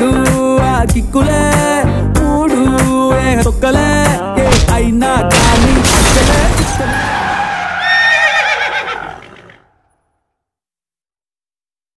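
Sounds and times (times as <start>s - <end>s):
high-pitched whinny-like cry: 7.7s - 9.6s.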